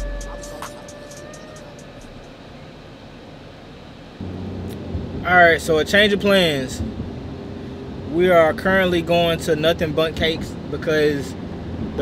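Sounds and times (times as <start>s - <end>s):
held musical note: 0.0s - 2.6s
low hum: 0.0s - 9.2s.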